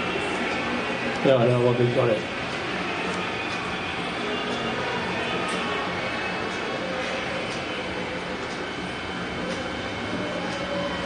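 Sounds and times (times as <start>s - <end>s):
steady droning noise: 0.0s - 11.0s.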